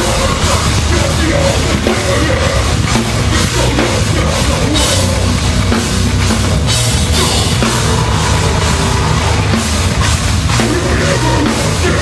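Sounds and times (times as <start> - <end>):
bass guitar: 0.0 - 12.0
distorted electric guitars: 0.0 - 12.0
drum kit: 0.0 - 12.0.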